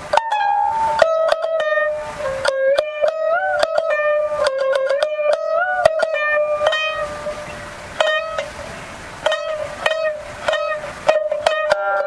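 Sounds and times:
shamisen notes plucked: 0:00.0 - 0:12.0.

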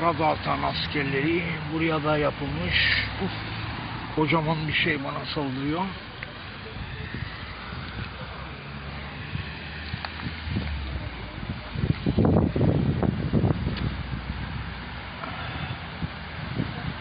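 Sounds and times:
wind on microphone: 0:06.4 - 0:17.0.

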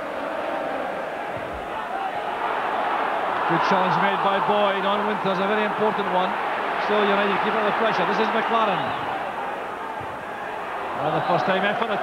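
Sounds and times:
stadium crowd murmur: 0:00.0 - 0:12.0.

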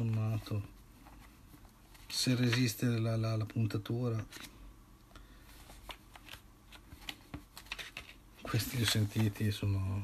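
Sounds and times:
paper rustling: 0:05.4 - 0:09.6.

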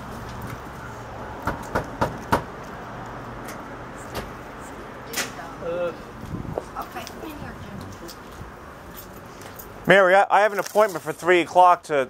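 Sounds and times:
low outdoor background noise: 0:00.0 - 0:12.0
knocks on a door: 0:01.5 - 0:02.5.

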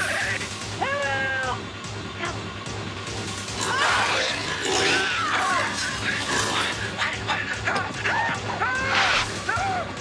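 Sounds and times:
droning horror film score: 0:00.0 - 0:10.0.

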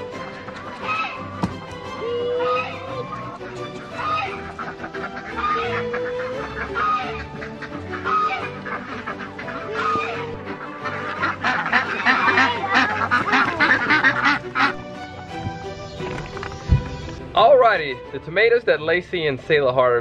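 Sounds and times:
ducks quacking: 0:00.0 - 0:17.2
chickens calling: 0:00.0 - 0:17.8
background music: 0:00.0 - 0:20.0.

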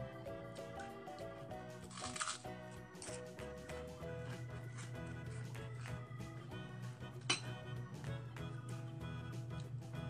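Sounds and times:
plucked background music: 0:00.0 - 0:10.0
crisp packaging crackle: 0:01.9 - 0:03.2.

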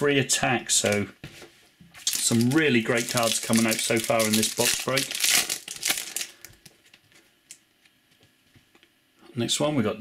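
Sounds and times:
foil wrapper crinkling: 0:02.0 - 0:07.6.

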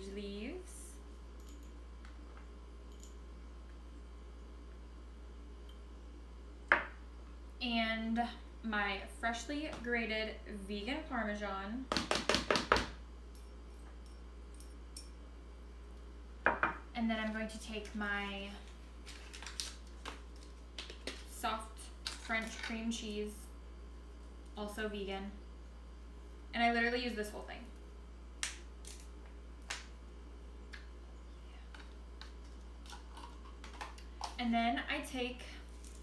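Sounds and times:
steady low hum: 0:00.0 - 0:36.0
dish knocking on countertop: 0:06.7 - 0:07.0, 0:16.5 - 0:16.8.

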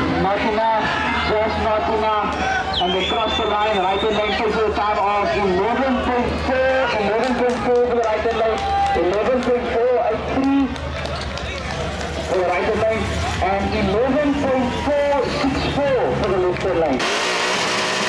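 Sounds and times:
crowd babble: 0:00.0 - 0:18.0.

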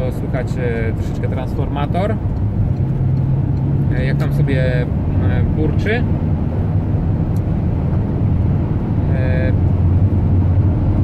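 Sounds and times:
road and engine rumble in a van: 0:00.0 - 0:11.0.

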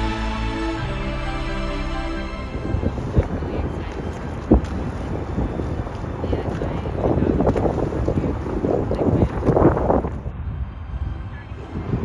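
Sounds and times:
wind buffeting microphone: 0:02.3 - 0:12.0
muffled voices: 0:02.6 - 0:10.2.

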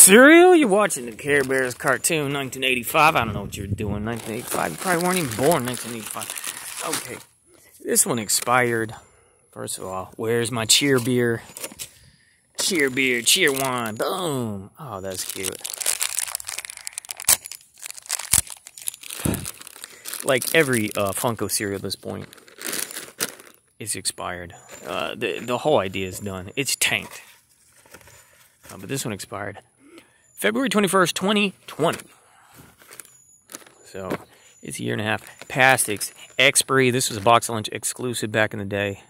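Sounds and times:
quiet outdoor background: 0:00.0 - 0:39.0
plastic bags crinkling: 0:04.0 - 0:07.2, 0:12.6 - 0:13.9, 0:15.0 - 0:23.7, 0:32.7 - 0:33.9
handling cardboard box: 0:04.1 - 0:07.2, 0:15.2 - 0:21.2, 0:32.6 - 0:34.3.

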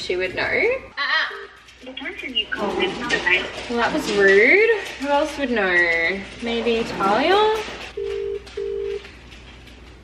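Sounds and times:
phone ringback tone: 0:08.0 - 0:09.0.

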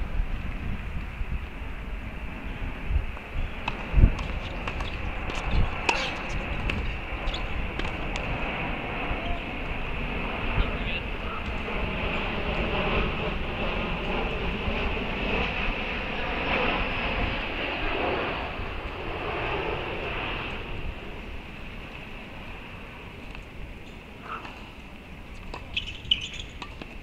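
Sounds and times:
distant engine rumble: 0:00.0 - 0:27.0.

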